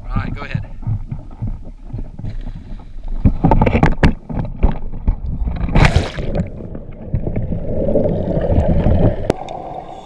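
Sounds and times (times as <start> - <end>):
low rumble of wind and water: 0.0 - 10.0
camera handling knocks and bumps: 3.2 - 5.2.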